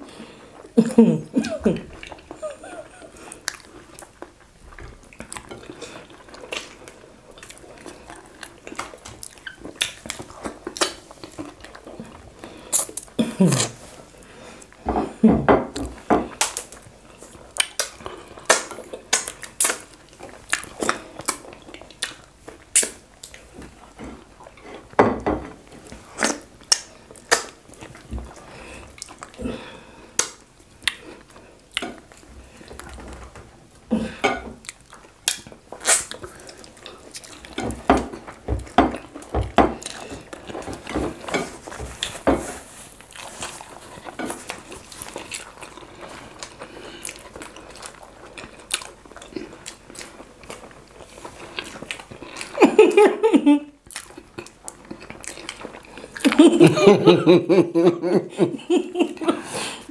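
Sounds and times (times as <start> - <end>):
chewing: 1.4 - 53.0, 53.8 - 56.5.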